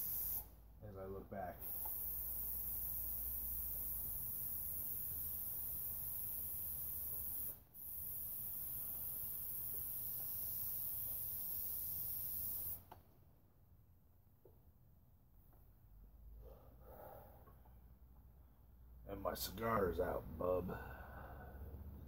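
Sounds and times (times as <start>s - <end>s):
airbrush spraying hiss: 0.0s - 0.5s, 1.6s - 12.9s.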